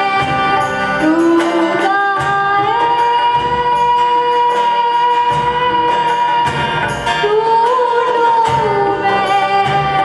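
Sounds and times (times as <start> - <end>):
acoustic guitar: 0.0 - 10.0.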